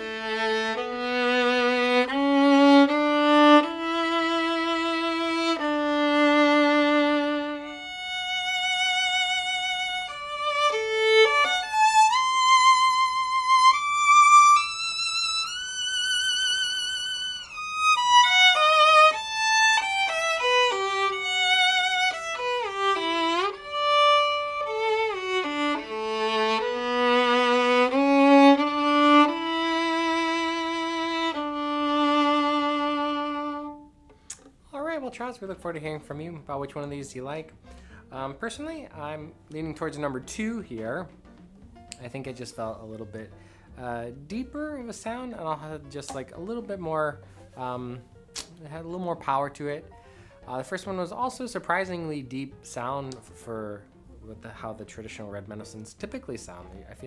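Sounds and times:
solo bowed violin melody: 0.0s - 34.4s.

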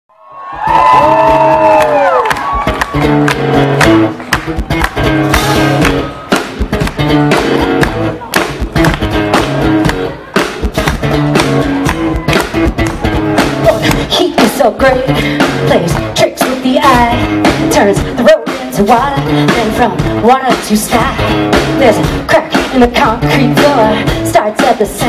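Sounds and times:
crowd cheering: 0.1s - 14.6s
bass guitar notes: 0.6s - 24.3s.

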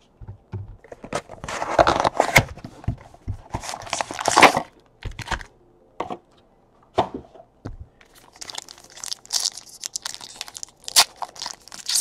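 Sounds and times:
foil wrapper crinkling and tearing: 3.6s - 4.7s, 8.1s - 12.0s.

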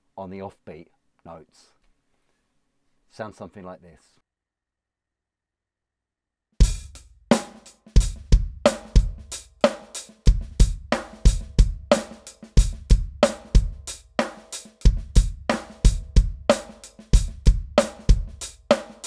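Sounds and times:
drum kit groove: 6.6s - 19.0s.

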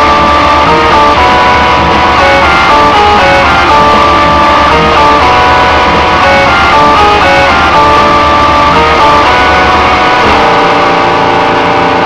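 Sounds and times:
electric guitar riff: 0.0s - 12.0s
heavy bass and drums: 0.0s - 12.0s.

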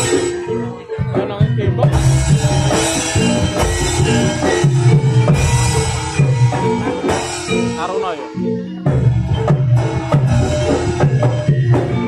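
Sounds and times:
ringing metallophone notes: 0.0s - 12.0s.

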